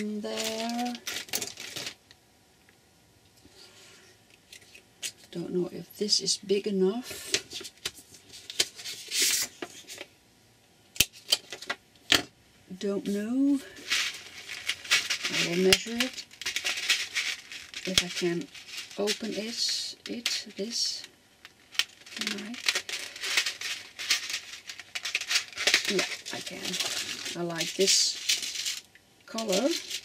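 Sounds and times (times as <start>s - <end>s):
rustling: 0.0s - 2.0s, 7.2s - 10.1s, 13.0s - 30.0s.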